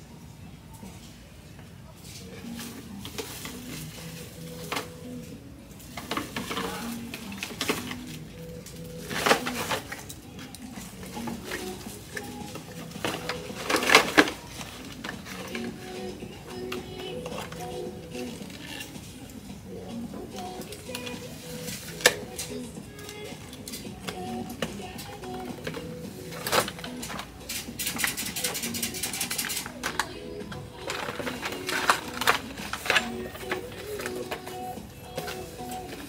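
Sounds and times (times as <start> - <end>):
paper rustling and crinkling: 2.2 - 5.2, 5.8 - 19.0, 26.2 - 36.0.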